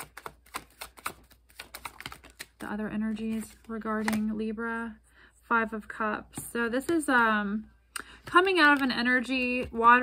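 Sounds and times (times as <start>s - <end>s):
cards being shuffled by hand: 0.0s - 4.4s.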